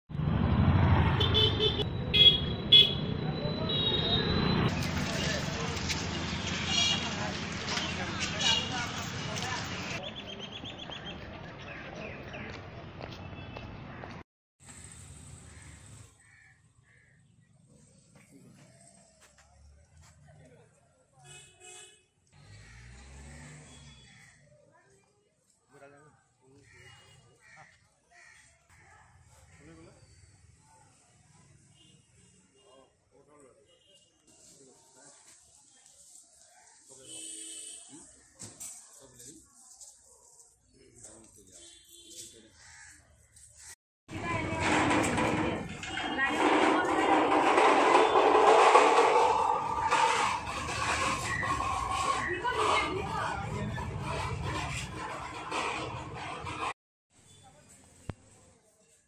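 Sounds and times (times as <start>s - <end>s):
street traffic: 0.1s - 59.0s
vehicle horn toots: 1.0s - 4.6s
indistinct voices: 44.1s - 56.7s.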